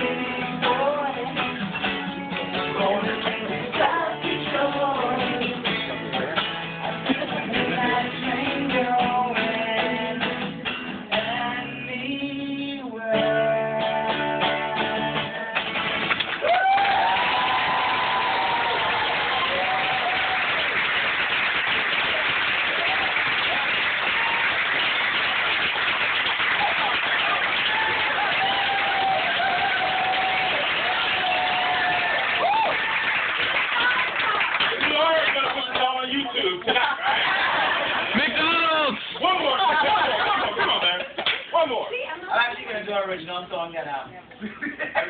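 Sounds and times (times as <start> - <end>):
acoustic guitar strummed: 0.0 - 16.3
audience applause: 15.6 - 41.4
audience cheering and whooping: 16.3 - 34.8, 37.0 - 38.3.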